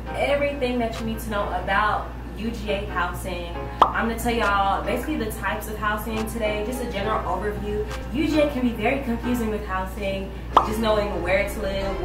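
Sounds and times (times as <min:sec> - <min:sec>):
woman talking: 0:00.1 - 0:12.0.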